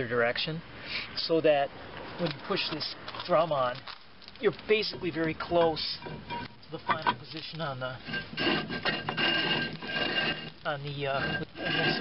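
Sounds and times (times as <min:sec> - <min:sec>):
brake shoes scraping in drum: 0:02.0 - 0:12.0.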